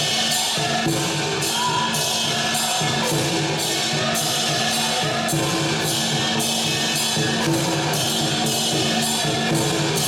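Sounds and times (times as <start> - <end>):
cymbals clashing: 0.0 - 10.0.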